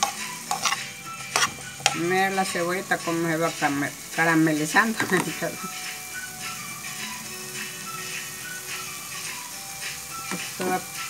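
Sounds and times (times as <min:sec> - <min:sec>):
slow background music: 0:00.0 - 0:11.0
vegetables sizzling in a pan: 0:00.0 - 0:11.0.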